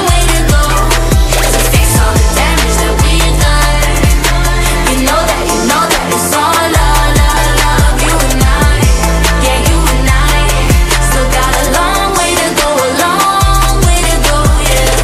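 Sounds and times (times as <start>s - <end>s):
deep sliding bass notes: 0.0s - 5.9s, 6.5s - 12.5s, 13.4s - 15.0s
female vocal group singing: 0.0s - 15.0s
steady beat: 0.0s - 15.0s.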